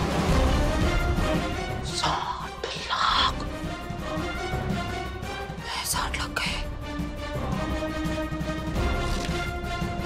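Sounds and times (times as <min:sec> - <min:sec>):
background music with held tones: 0:00.0 - 0:10.0
hissing whisper-like sounds: 0:01.9 - 0:03.5.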